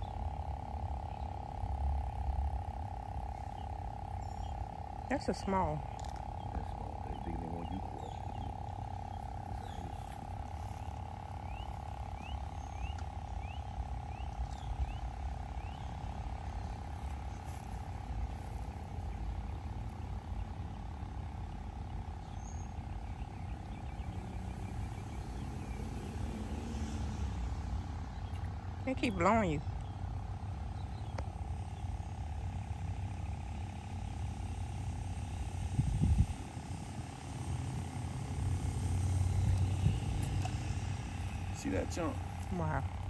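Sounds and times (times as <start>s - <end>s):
mid-pitched drone: 0.0s - 43.0s
wind rumble on microphone: 35.6s - 41.5s.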